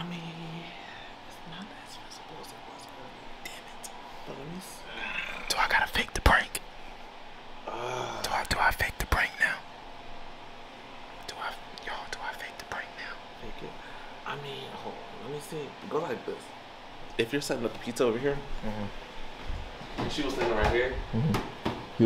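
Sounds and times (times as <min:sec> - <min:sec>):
people whispering: 0:00.0 - 0:06.6, 0:07.7 - 0:09.6, 0:11.3 - 0:13.8.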